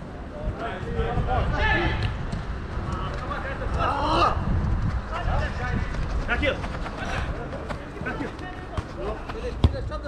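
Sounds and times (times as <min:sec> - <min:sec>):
football being kicked: 0:08.7 - 0:09.9.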